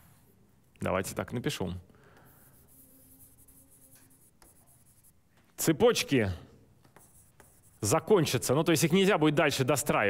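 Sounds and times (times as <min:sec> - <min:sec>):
stylus scratching on glass: 0:02.5 - 0:05.2, 0:07.0 - 0:08.1.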